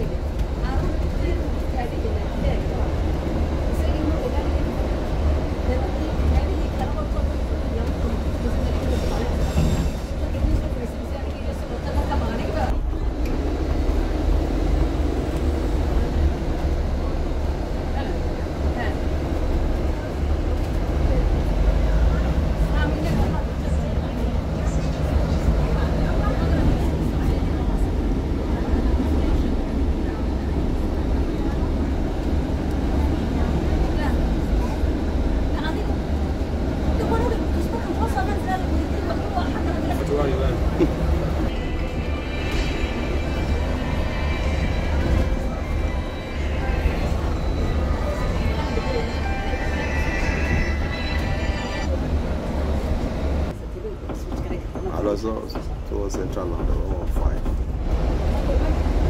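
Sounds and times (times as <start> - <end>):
bus engine drone: 0.0 - 59.0
road noise: 0.0 - 59.0.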